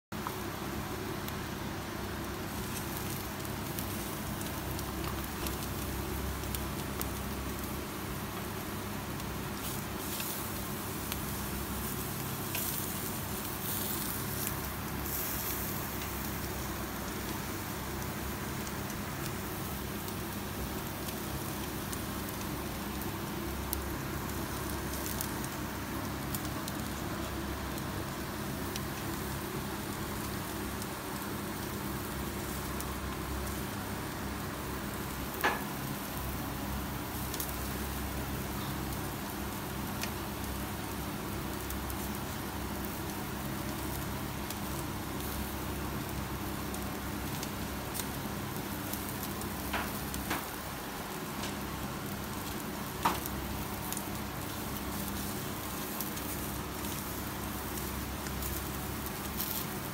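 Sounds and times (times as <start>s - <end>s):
skewers sizzling on gas grill: 0.2s - 59.9s.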